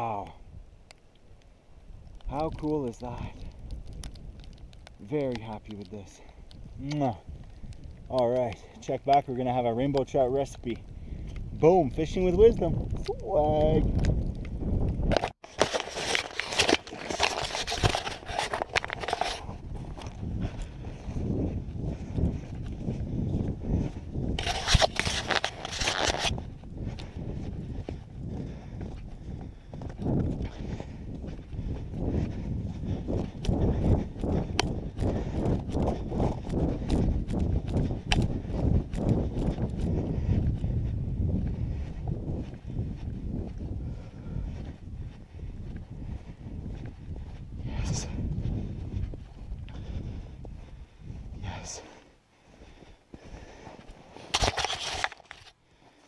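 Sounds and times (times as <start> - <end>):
footsteps crunching through snow: 15.2 - 56.0.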